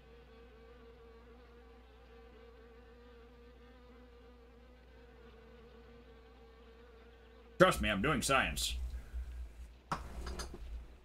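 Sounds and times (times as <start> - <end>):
faint insect buzzing: 0.0 - 11.0.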